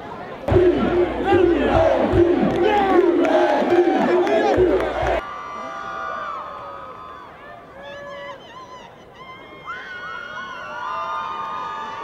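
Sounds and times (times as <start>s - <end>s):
football players shouting and whooping: 0.5s - 5.2s.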